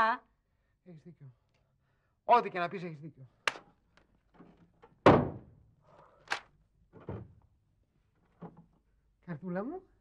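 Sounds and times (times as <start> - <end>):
door slamming shut: 5.0 - 5.6.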